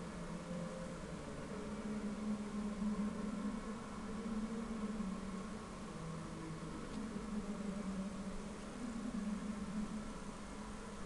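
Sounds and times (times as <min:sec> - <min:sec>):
low hum: 0:00.0 - 0:11.0
stadium ambience hiss: 0:00.0 - 0:11.0.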